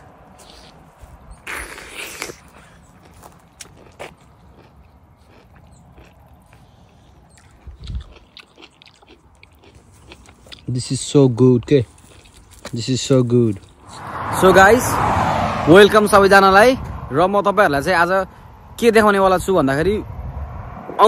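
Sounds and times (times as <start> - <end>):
wet bite into mango: 0.4 - 4.7
soft chewing clicks: 2.9 - 10.8, 11.6 - 12.8.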